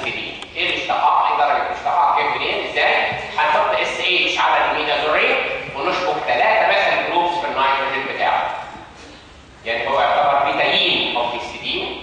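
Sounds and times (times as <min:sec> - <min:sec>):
man lecturing: 0:00.0 - 0:08.8, 0:09.6 - 0:12.0.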